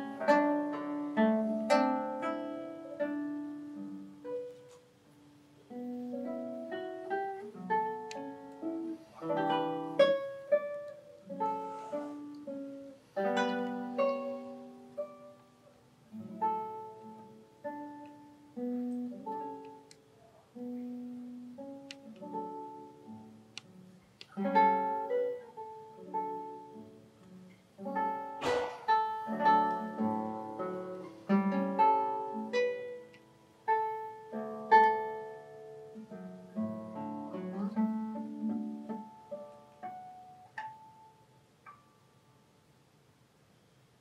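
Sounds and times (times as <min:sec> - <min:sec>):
classical guitar fingerpicked: 0:00.0 - 0:42.2
percussive stroke on guitar: 0:05.7 - 0:15.5, 0:20.6 - 0:33.3.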